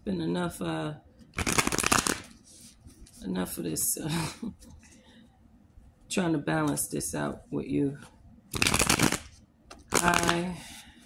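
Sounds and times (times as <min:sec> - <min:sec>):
cards being shuffled: 0:01.4 - 0:02.4, 0:08.6 - 0:10.5.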